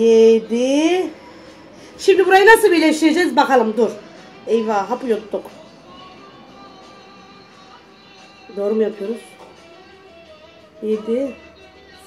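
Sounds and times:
faint background music: 0.0 - 12.0.

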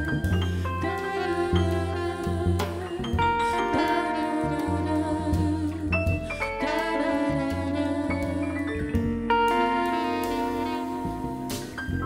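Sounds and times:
jazz band playing: 0.0 - 12.0
upright bass notes: 0.0 - 12.0
woman singing a long note: 0.8 - 8.8.

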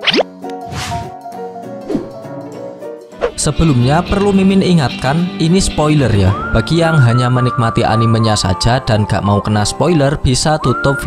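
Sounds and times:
rising pop effect: 0.0 - 1.0
swish effect: 0.0 - 1.1.

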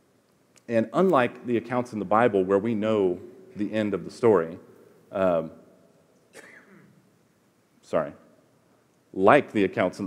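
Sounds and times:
man speaking: 0.6 - 5.7, 7.8 - 8.3, 9.1 - 10.0
man clearing throat: 6.3 - 7.0.

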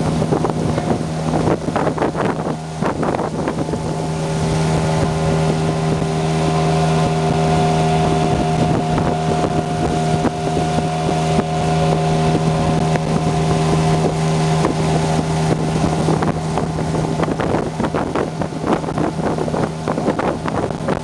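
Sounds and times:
motorboat engine running: 0.0 - 21.0
water rushing from wake: 0.0 - 21.0.

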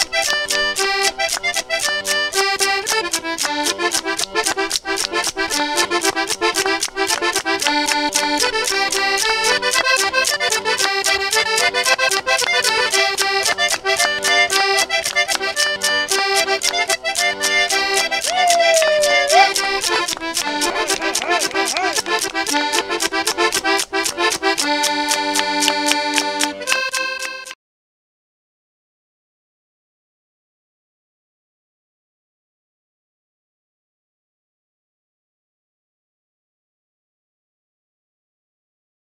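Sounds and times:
accordion dance tune: 0.0 - 27.6
driving percussion beat: 15.8 - 24.8.

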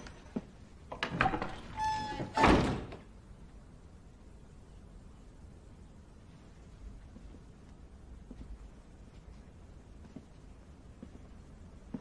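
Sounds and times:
wooden door thump: 1.0 - 3.0.

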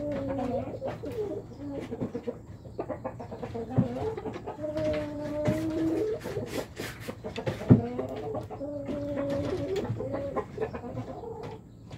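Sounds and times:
young chickens clucking: 0.0 - 11.9.

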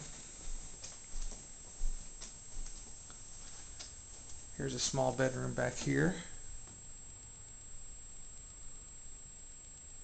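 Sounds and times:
footsteps on carpet: 0.0 - 6.3.

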